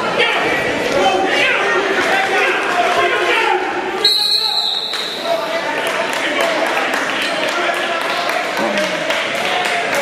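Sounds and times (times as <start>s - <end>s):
spectators chattering: 0.0s - 10.0s
referee's whistle blast: 4.0s - 5.3s.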